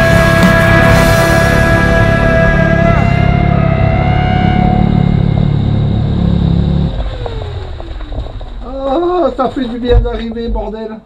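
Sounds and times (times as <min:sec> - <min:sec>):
motorcycle engine winding down: 0:00.0 - 0:09.9.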